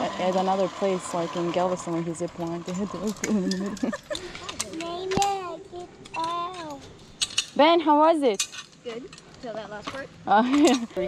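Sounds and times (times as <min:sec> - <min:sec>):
voices talking: 0:00.0 - 0:07.0.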